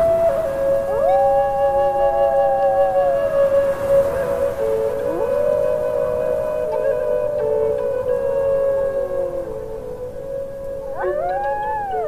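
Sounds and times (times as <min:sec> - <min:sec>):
low flute notes: 0:00.0 - 0:12.0
wolf howling: 0:00.0 - 0:12.0.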